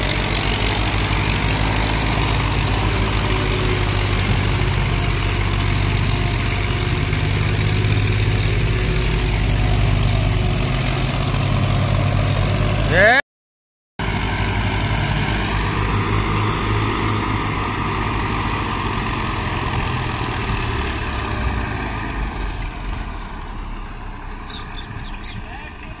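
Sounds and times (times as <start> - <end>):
tractor diesel engines under load: 0.0 - 13.2, 14.0 - 26.0.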